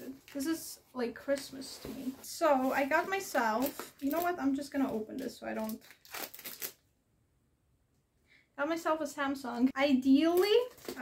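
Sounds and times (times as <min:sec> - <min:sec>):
packing tape tearing off box: 0:05.7 - 0:06.8.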